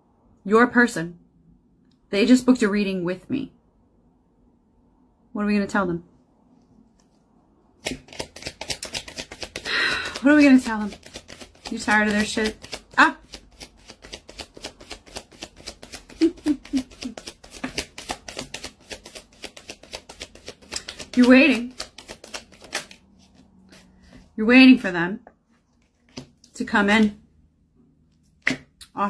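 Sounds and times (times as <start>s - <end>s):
cards being shuffled: 7.8s - 24.3s, 25.5s - 27.2s.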